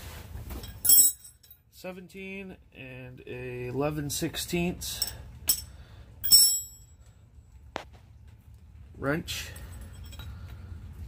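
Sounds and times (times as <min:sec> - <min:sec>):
metal tools clinking on concrete: 0:00.5 - 0:01.7, 0:04.9 - 0:07.1, 0:09.4 - 0:10.6.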